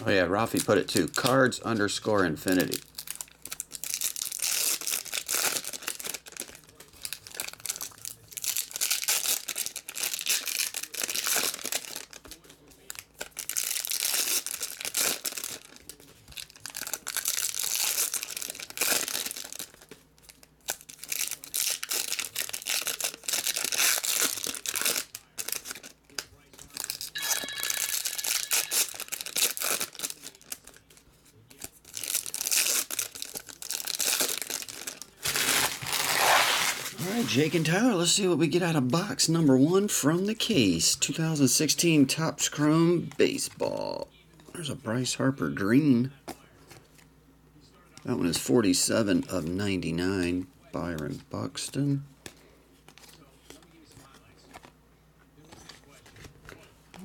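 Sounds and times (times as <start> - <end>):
foil packs tearing and crinkling: 0.4 - 1.4, 2.0 - 27.1, 28.1 - 38.7.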